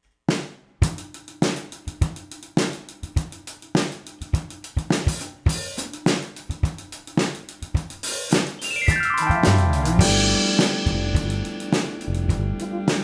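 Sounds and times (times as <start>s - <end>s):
drum kit playing a groove: 0.3s - 13.0s
pitched instruments: 8.6s - 13.0s.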